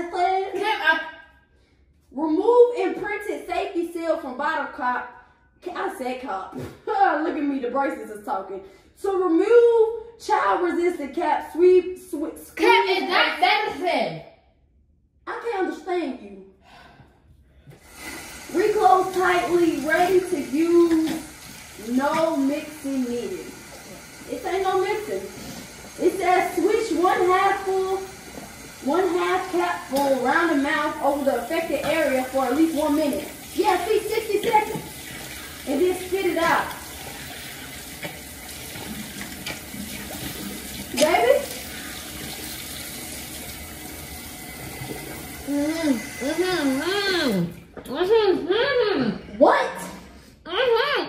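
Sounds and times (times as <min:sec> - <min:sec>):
faucet running into sink: 0:17.8 - 0:47.7
person's voice: 0:21.8 - 0:23.6, 0:24.3 - 0:25.3, 0:28.8 - 0:34.8, 0:35.7 - 0:36.8, 0:40.9 - 0:41.5, 0:45.5 - 0:51.0.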